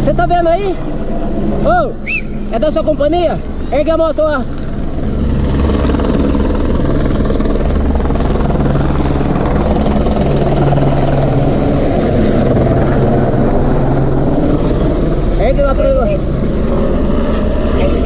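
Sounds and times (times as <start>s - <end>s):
helicopter hovering overhead: 0.0s - 18.0s.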